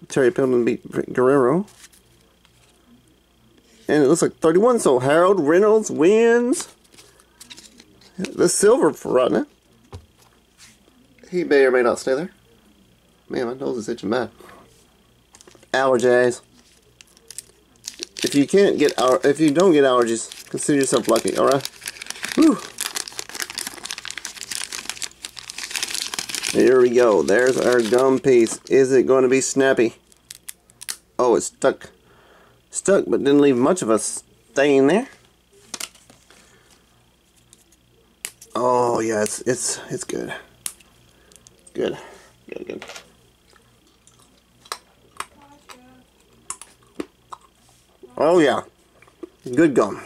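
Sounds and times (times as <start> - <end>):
paper wrapper crinkling: 17.0 - 28.8, 30.1 - 31.0
gum chewing clicks and smacks: 43.5 - 45.3, 46.4 - 47.6.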